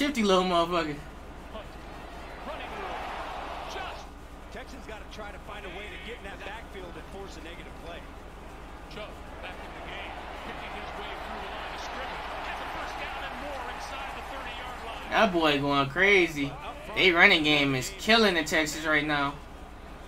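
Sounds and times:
commentators calling plays: 0.0s - 20.0s
stadium crowd noise: 0.0s - 20.0s.

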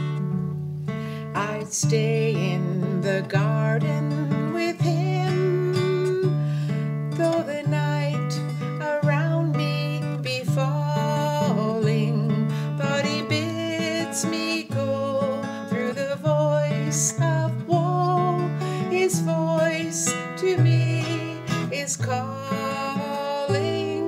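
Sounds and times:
acoustic guitar strumming: 0.0s - 24.0s
woman singing: 0.0s - 24.0s.

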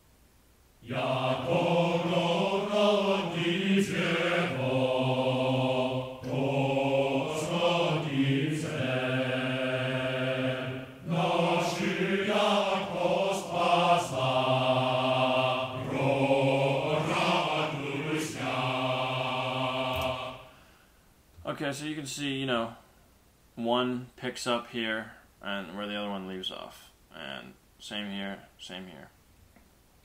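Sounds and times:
male choir singing held syllables: 0.8s - 20.6s.

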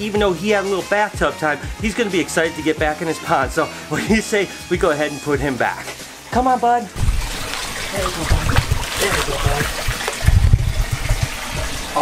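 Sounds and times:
water sloshing: 6.9s - 12.0s
alligator splashing in water: 7.0s - 12.0s.

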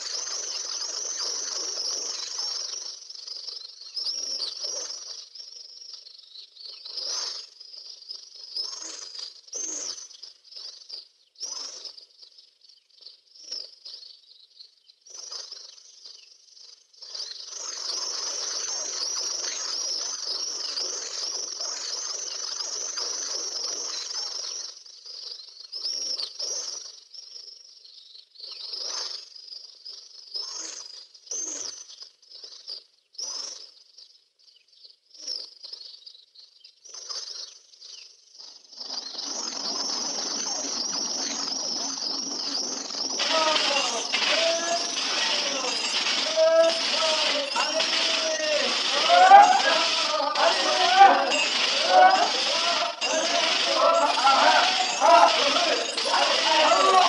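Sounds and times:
small birds chirping: 0.0s - 57.0s.

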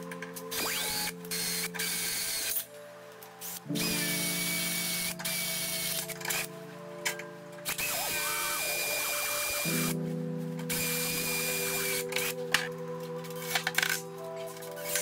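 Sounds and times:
background music: 0.0s - 15.0s
drill boring into steel: 0.5s - 2.6s, 3.7s - 6.5s, 7.7s - 10.0s, 10.7s - 12.3s.

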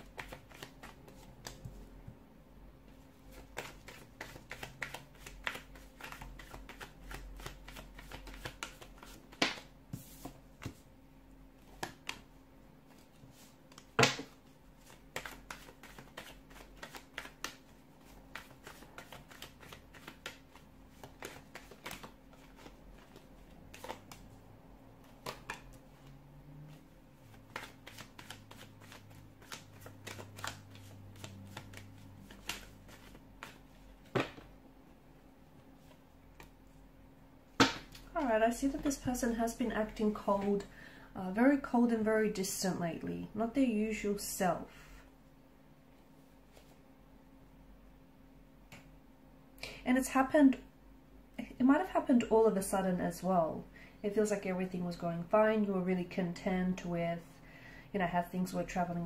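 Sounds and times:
cards being shuffled: 0.0s - 1.9s, 3.3s - 10.8s, 12.9s - 24.3s, 25.0s - 26.0s, 27.3s - 34.4s.

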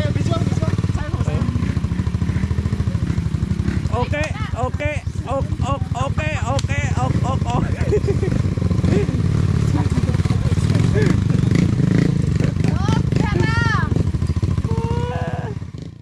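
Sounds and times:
voices calling out: 0.0s - 15.7s
motorcycle engine idling: 0.0s - 16.0s.

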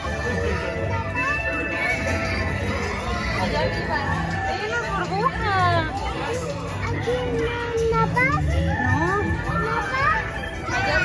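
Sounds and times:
children chattering: 0.0s - 11.0s
faint music: 0.0s - 11.0s.

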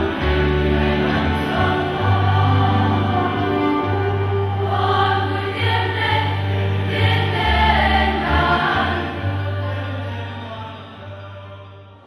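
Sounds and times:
choir singing a hymn: 0.0s - 12.0s.

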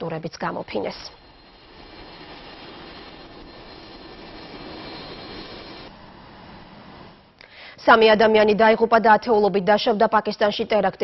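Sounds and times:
aircraft engine: 1.2s - 7.2s.

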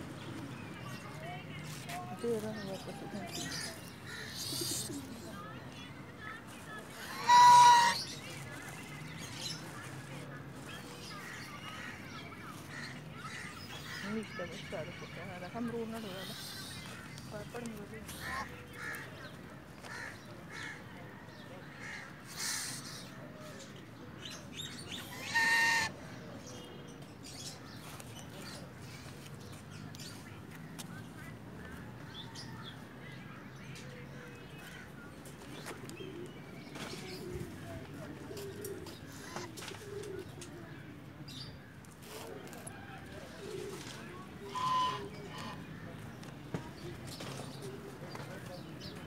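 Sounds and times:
birds cooing: 2.8s - 5.3s, 6.9s - 8.2s, 35.6s - 41.2s, 42.3s - 45.6s
goose honking: 7.0s - 8.1s, 25.1s - 25.9s, 44.5s - 45.6s
high-pitched bird call: 7.1s - 8.1s.

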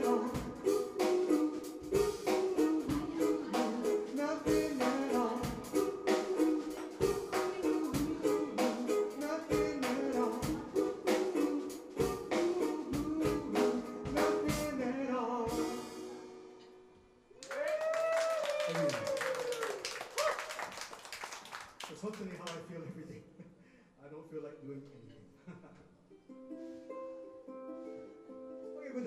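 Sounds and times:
drum kit beat: 0.0s - 14.9s, 15.5s - 16.3s
ukulele: 0.0s - 16.8s, 26.0s - 29.0s.

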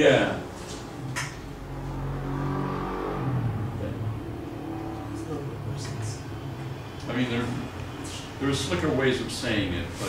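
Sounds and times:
low engine hum: 0.4s - 10.0s.

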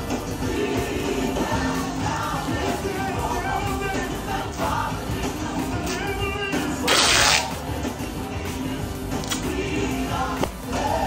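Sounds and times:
background music: 0.0s - 11.0s
tape ripping off roll: 6.8s - 7.6s.

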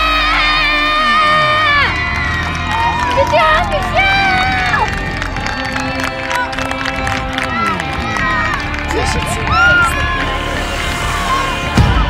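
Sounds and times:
girls shouting and cheering: 0.0s - 12.0s
music playing: 0.0s - 12.0s.

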